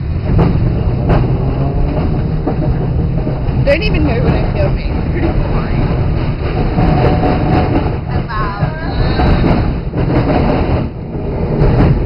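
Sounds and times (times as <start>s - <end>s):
tram wheels rumbling on rails: 0.0s - 12.0s.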